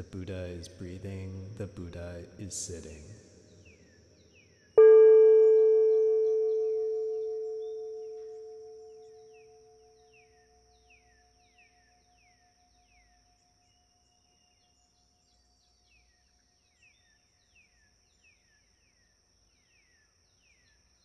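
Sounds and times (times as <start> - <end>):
faint short chirps: 4.8 - 9.5
meditation bell ringing: 4.8 - 9.5.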